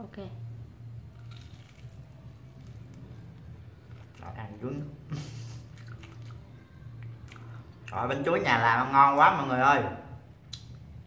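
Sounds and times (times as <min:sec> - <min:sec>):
low hum: 0:00.0 - 0:07.9
crunching of fried food: 0:01.1 - 0:04.6, 0:05.6 - 0:08.2.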